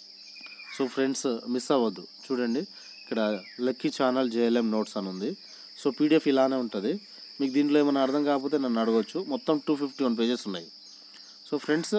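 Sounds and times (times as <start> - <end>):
man speaking: 11.5 - 11.9.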